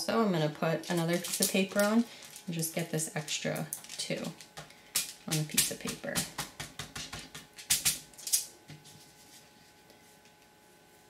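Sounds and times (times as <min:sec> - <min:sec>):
aluminium foil crinkling: 0:00.6 - 0:08.5.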